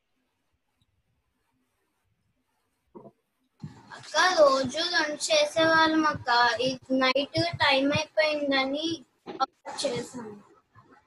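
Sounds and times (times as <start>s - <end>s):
girl singing unaccompanied: 3.9s - 10.4s.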